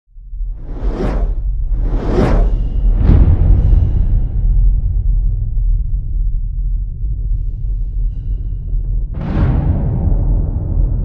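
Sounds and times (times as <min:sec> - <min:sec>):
deep low rumble: 0:00.1 - 0:11.0
cinematic whoosh: 0:00.5 - 0:05.0.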